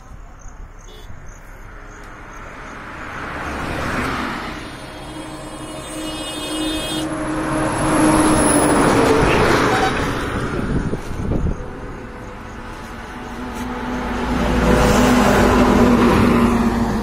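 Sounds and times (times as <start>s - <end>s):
vehicles passing on highway: 0.0s - 17.0s
steady engine hum: 1.5s - 17.0s.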